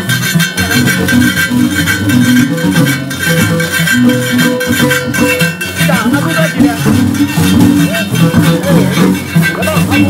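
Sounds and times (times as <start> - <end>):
plucked harp-lute melody: 0.0 - 10.0.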